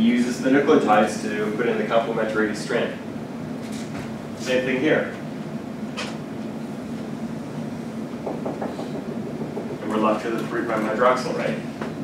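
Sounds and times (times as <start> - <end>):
ventilation hum: 0.0 - 12.0.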